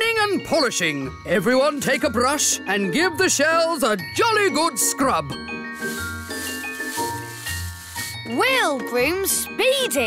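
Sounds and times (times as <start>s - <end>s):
light cartoon music: 0.0s - 10.0s
brushes scrubbing shells: 5.7s - 8.4s.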